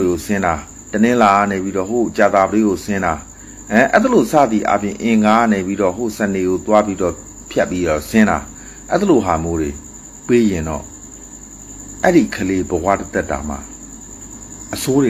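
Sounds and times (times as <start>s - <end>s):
man talking: 0.0s - 10.9s, 12.0s - 13.7s, 14.7s - 15.0s
cricket trilling: 0.0s - 15.0s.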